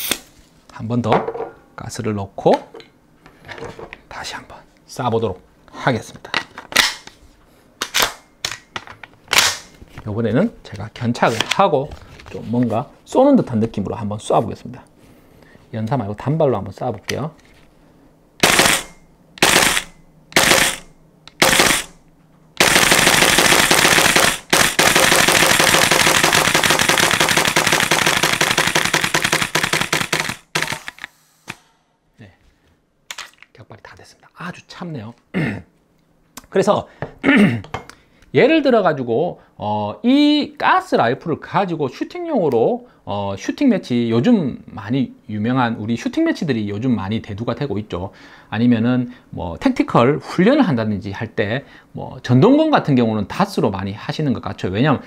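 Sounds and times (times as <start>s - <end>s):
airsoft rifle firing: 18.4s - 22.0s, 22.6s - 31.7s.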